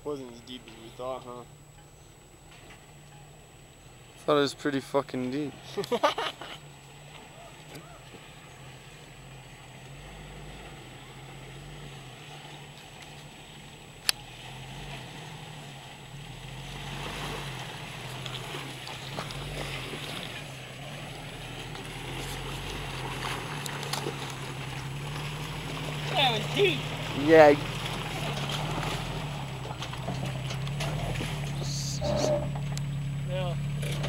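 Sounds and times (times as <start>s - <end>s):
car engine running at low speed: 0.0s - 34.0s
water sloshing and splashing: 12.2s - 31.6s.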